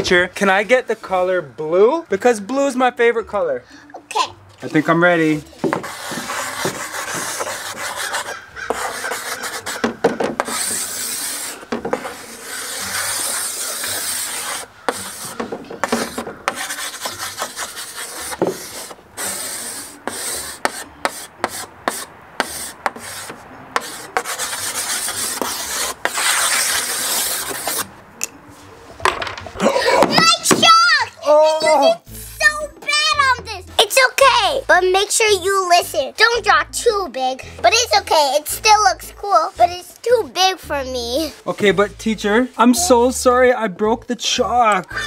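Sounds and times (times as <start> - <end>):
chalk scraping on blackboard: 5.6 - 27.9, 38.6 - 40.2.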